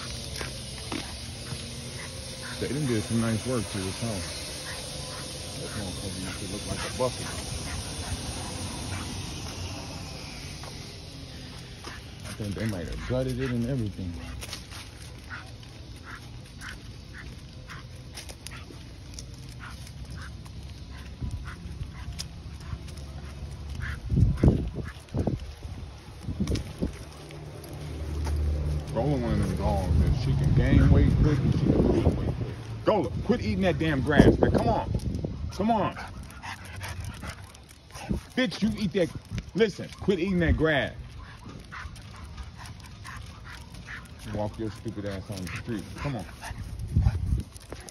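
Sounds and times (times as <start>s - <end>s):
dog breathing and sniffing: 0.0s - 9.7s, 11.3s - 18.8s, 35.4s - 40.4s, 41.0s - 47.9s
wind or microphone handling noise: 23.8s - 27.1s, 29.8s - 35.6s, 46.3s - 47.9s.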